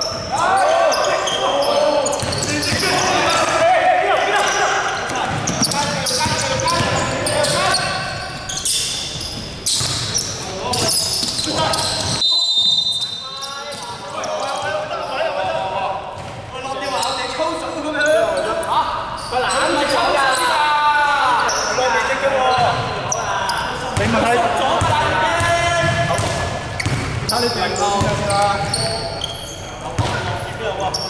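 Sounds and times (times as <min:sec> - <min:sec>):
players shouting: 0:00.0 - 0:08.2.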